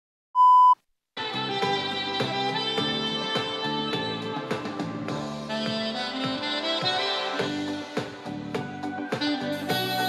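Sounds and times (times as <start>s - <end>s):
test-tone beep: 0.4s - 0.8s
instrumental music: 1.2s - 10.0s.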